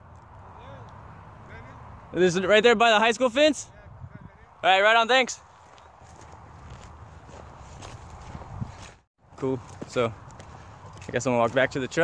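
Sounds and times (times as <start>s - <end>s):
footsteps on dirt path: 5.4s - 12.0s.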